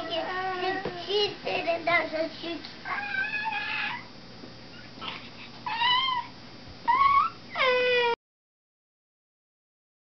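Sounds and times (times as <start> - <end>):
child squealing: 2.9 - 4.1, 4.8 - 6.3, 6.9 - 8.2.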